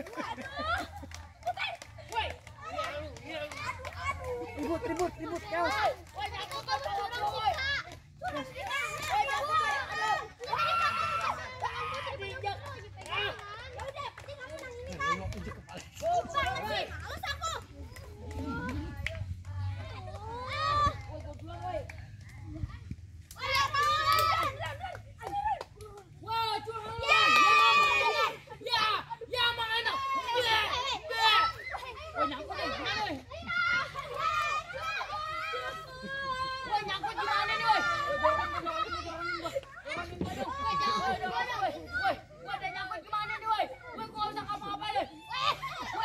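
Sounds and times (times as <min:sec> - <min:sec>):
girls talking and calling out: 0:00.0 - 0:46.0.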